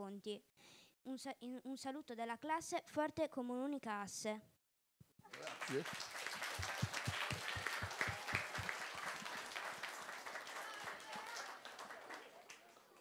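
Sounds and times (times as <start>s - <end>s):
audience applauding: 5.2s - 13.0s.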